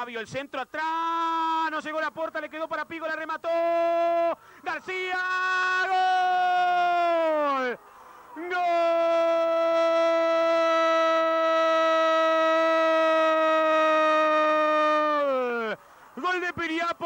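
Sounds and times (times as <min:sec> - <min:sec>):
man commentating: 0:00.0 - 0:17.0
man shouting drawn-out goal cry: 0:00.7 - 0:17.0.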